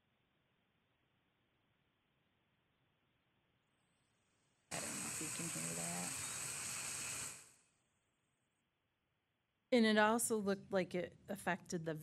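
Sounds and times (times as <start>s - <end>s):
power line crackling hiss: 4.7s - 7.6s.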